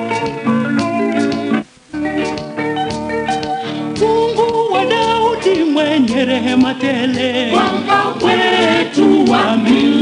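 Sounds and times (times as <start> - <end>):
instrumental accompaniment: 0.0 - 10.0
person singing gospel: 4.0 - 10.0.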